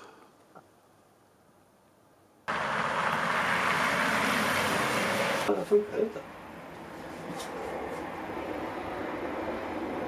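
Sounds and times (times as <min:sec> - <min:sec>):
car engine running: 0:02.5 - 0:05.5.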